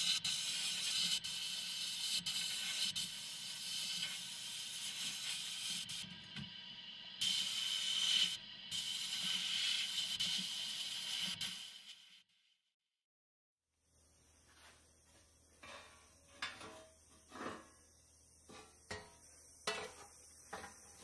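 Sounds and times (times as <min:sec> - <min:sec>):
sandblasting gun hissing: 0:00.0 - 0:06.1, 0:07.0 - 0:12.2.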